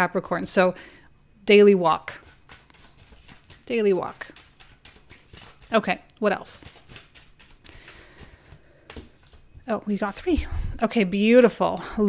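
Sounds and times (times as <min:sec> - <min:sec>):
cards shuffling: 0:02.1 - 0:09.7
cards tapping on tabletop: 0:04.3 - 0:05.6, 0:06.6 - 0:09.4.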